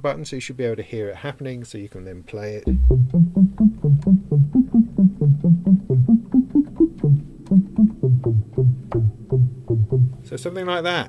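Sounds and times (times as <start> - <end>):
fast run of low synthesizer notes: 2.7 - 10.4.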